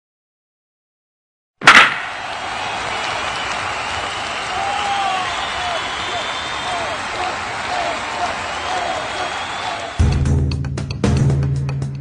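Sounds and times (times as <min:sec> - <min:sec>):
sharp impact crack: 0:01.6 - 0:02.3.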